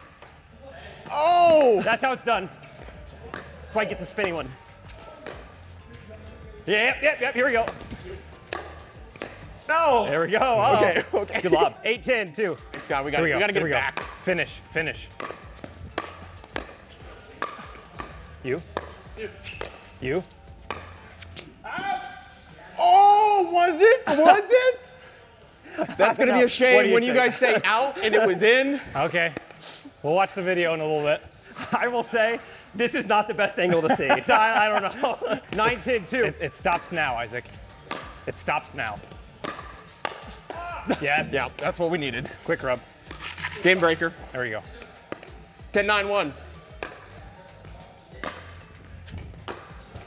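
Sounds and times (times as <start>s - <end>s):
background music: 0.0s - 50.0s
person shouting: 1.1s - 1.8s
paddle hits and ball bounces: 7.6s - 9.5s, 15.1s - 19.8s, 20.6s - 21.0s, 37.8s - 38.2s, 39.4s - 40.6s, 48.2s - 49.8s.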